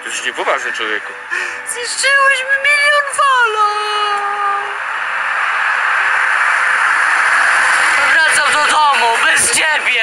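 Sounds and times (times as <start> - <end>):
loud steady hiss: 3.4 - 10.0.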